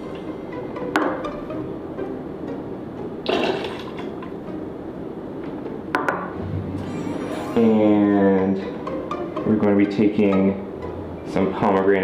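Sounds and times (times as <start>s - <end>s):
background music: 0.0s - 12.0s
whiskey pouring: 3.2s - 4.1s.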